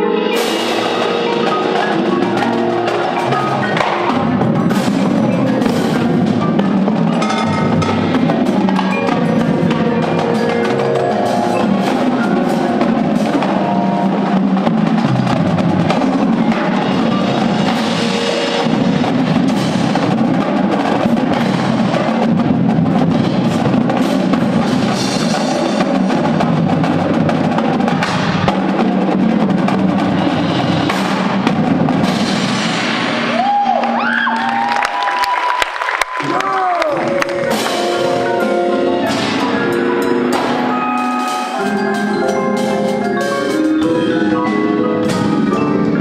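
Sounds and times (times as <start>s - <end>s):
mallet keyboard notes: 0.0s - 33.0s, 37.0s - 46.0s
percussion ensemble playing: 0.0s - 46.0s.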